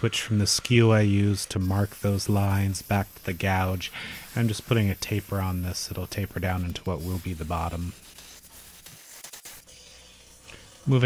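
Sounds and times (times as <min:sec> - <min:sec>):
gouge hissing on wood lathe: 0:00.0 - 0:11.0.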